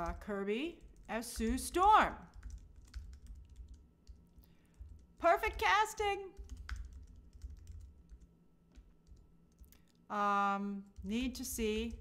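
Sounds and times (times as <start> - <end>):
person speaking: 0.0 - 2.4, 5.1 - 6.6, 10.0 - 12.0.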